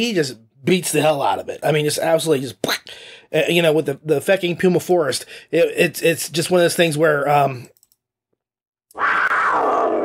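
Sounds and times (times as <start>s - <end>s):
big cat roar: 8.9s - 10.0s.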